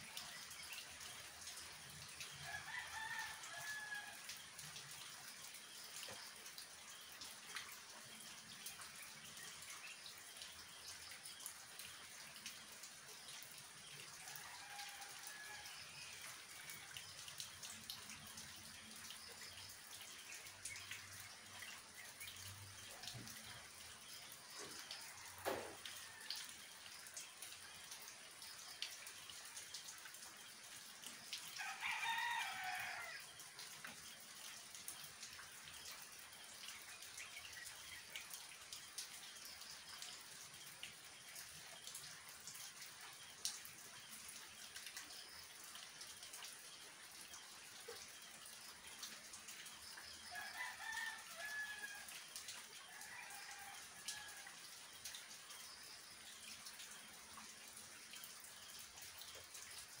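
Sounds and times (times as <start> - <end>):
rain on foliage and roofs: 0.0 - 60.0
rooster crowing: 31.6 - 33.2, 50.3 - 52.1.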